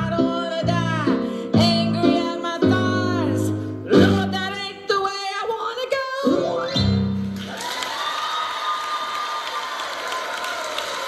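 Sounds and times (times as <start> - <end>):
audience applauding and cheering: 7.2 - 11.0.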